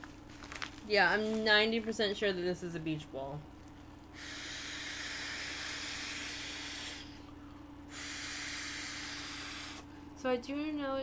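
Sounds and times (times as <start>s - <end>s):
breath blown into beach ball: 4.2s - 7.2s, 7.9s - 9.9s.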